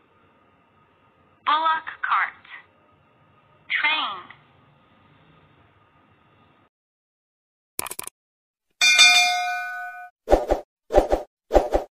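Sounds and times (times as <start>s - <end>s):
notification bell chime: 8.8s - 10.1s.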